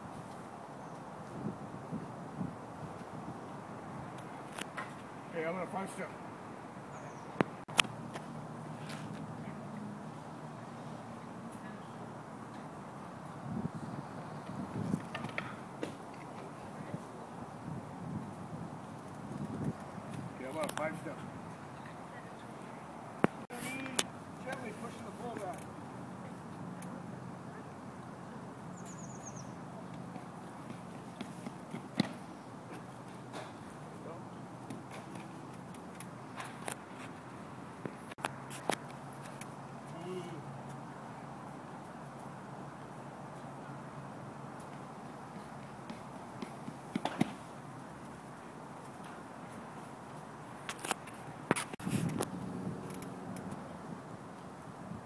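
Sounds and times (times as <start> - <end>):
wind noise: 1.1 - 5.2, 13.1 - 16.1, 16.7 - 22.0, 50.7 - 55.0.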